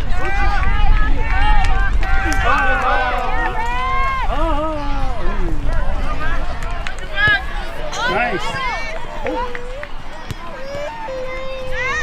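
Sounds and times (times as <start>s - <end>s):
people shouting and calling out: 0.0s - 12.0s.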